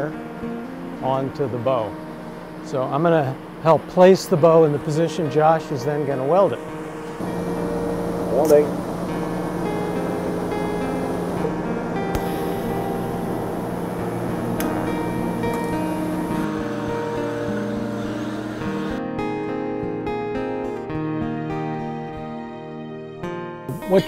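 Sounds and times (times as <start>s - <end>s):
steady hiss: 1.0s - 19.0s
plucked acoustic guitar music: 6.6s - 21.0s.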